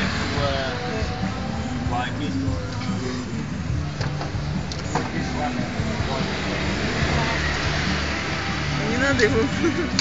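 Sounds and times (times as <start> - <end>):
indistinct background voices: 0.0 - 9.7
street noise: 0.0 - 10.0.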